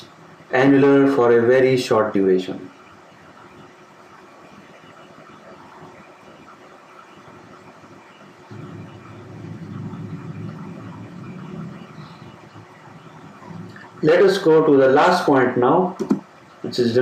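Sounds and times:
faint background noise: 0:00.0 - 0:17.0
low rumble: 0:08.5 - 0:14.2.

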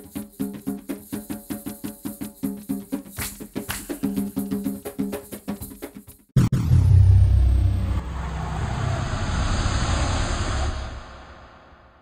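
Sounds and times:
cinematic rumble with rushing hiss: 0:06.4 - 0:12.0.

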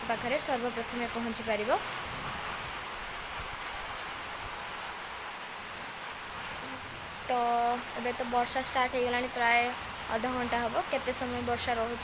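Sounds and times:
steady rain hiss: 0:00.0 - 0:12.0.

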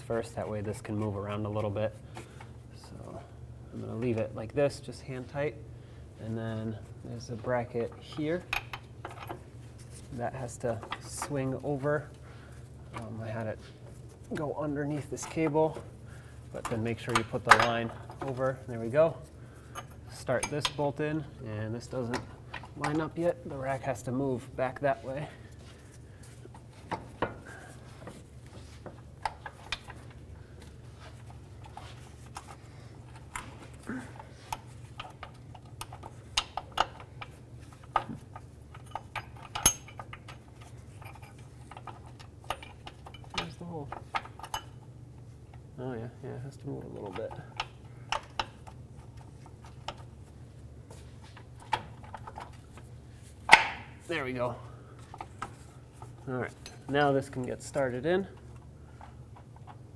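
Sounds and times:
steady low hum: 0:00.0 - 0:59.9
metallic clinks of bolts: 0:38.8 - 0:40.2.

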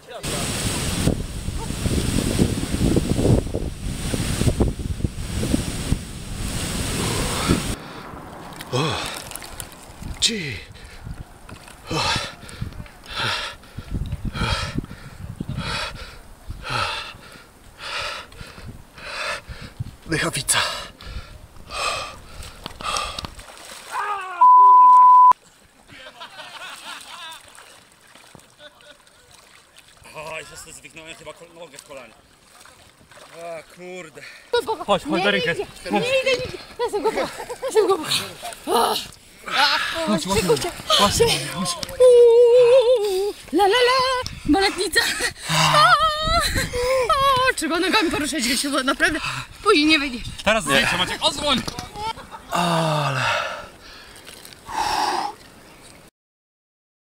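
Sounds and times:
wind buffeting microphone: 0:00.3 - 0:17.7, 0:18.4 - 0:20.1, 0:43.3 - 0:48.4, 0:49.4 - 0:52.0
man gasping and panting: 0:11.8 - 0:19.8, 0:20.5 - 0:23.3, 0:52.5 - 0:54.1
censor bleep: 0:24.4 - 0:25.4.

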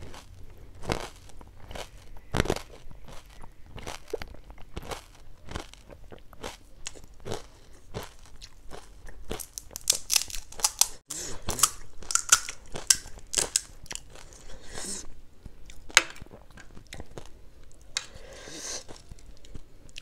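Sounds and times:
crunching and chewing snacks: 0:00.0 - 0:20.0.

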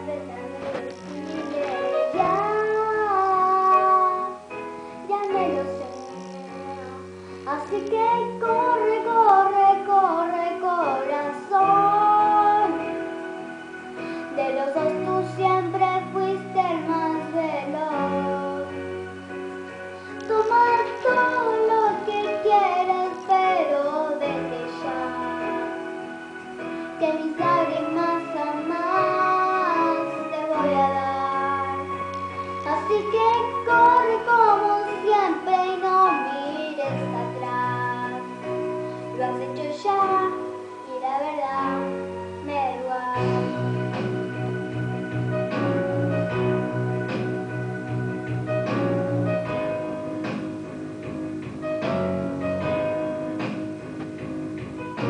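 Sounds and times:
girl singing: 0:00.0 - 0:13.2, 0:14.0 - 0:19.0, 0:20.0 - 0:44.4
recorded backing music: 0:00.0 - 0:55.0.

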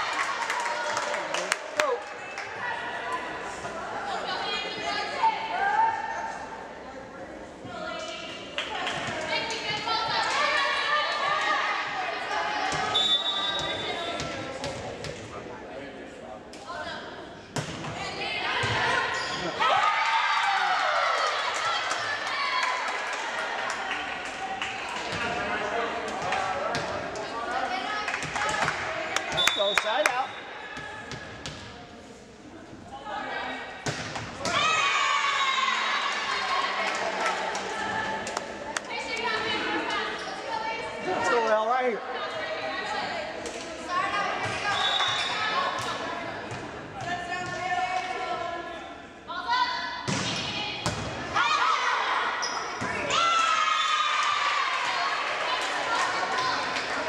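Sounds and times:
players and spectators shouting: 0:34.4 - 0:36.9, 0:51.4 - 0:52.4, 0:53.0 - 0:56.7.

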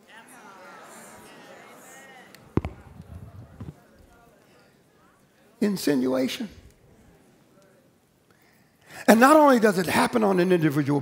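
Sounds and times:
headset microphone handling bumps: 0:02.5 - 0:04.2.

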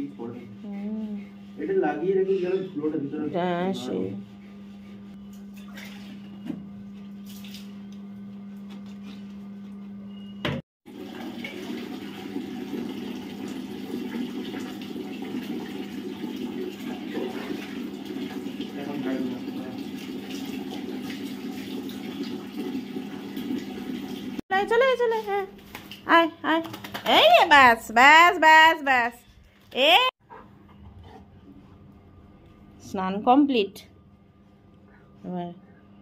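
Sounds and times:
water splashing on dog and floor: 0:05.6 - 0:06.2, 0:07.0 - 0:07.8, 0:10.9 - 0:27.4.

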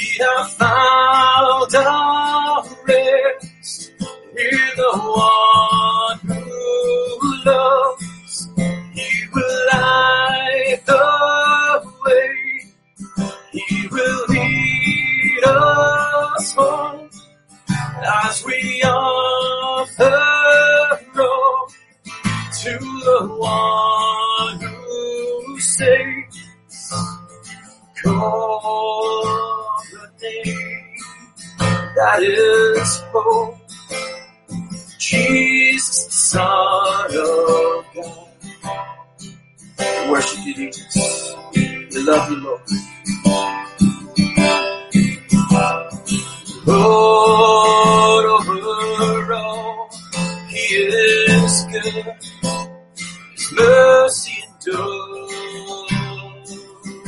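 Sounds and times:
person singing: 0:00.0 - 0:38.9, 0:39.8 - 0:57.0
strummed acoustic guitar: 0:00.0 - 0:57.0.

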